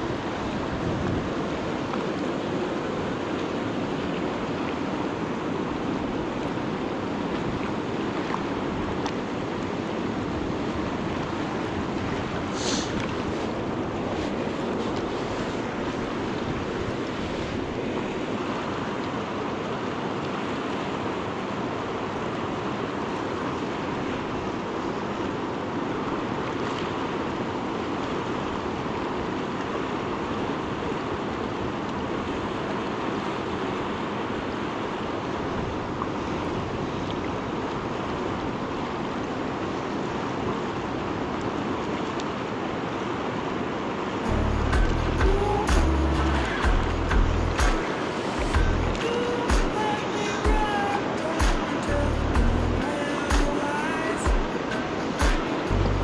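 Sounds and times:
river rushing over rocks: 0.0 - 56.0.

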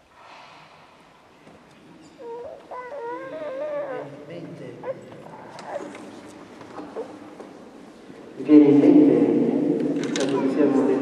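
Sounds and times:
high wavering voice-like cry: 2.2 - 4.2.

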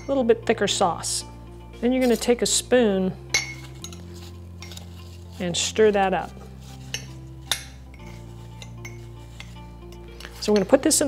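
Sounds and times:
spoon clinking against ceramic mug: 3.3 - 4.0, 6.9 - 7.8, 8.6 - 9.6, 10.3 - 10.8
spoon scraping while stirring: 3.6 - 10.8.

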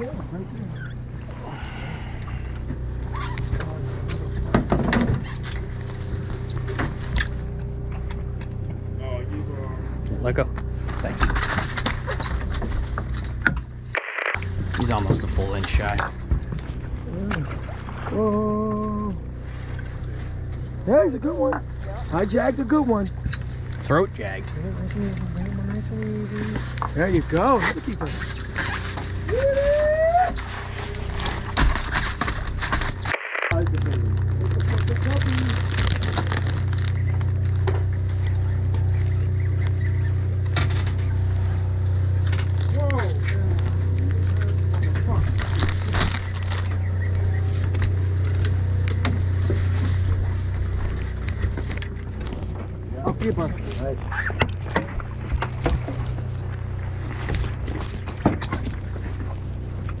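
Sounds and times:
boat engine droning: 0.0 - 60.0.

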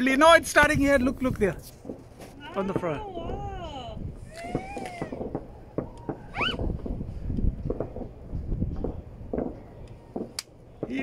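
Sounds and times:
steady low rumble: 0.3 - 10.9
distant firework pops and crackles: 1.3 - 3.6, 4.2 - 11.0
sharp firework crack: 4.2 - 11.0.

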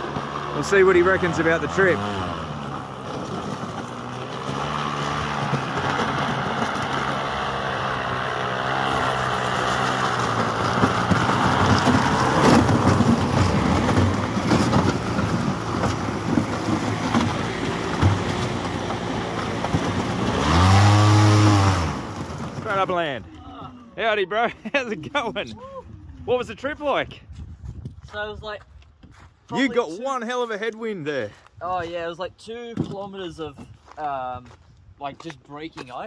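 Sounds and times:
hull pushing through broken ice: 0.0 - 23.4
airboat propeller hum: 3.8 - 22.2.

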